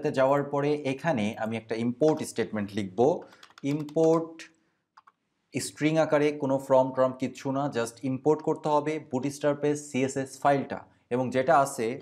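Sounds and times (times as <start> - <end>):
man speaking: 0.0 - 4.6, 5.6 - 12.0
keyboard keystrokes: 3.2 - 4.4.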